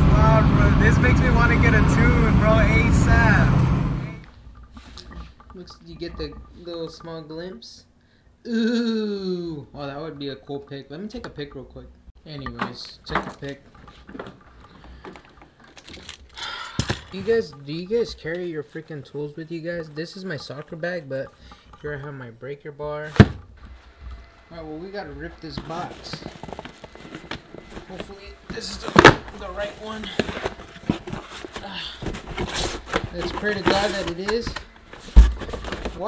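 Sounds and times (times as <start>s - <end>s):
cardboard flaps scraping and rustling: 25.6s - 36.0s.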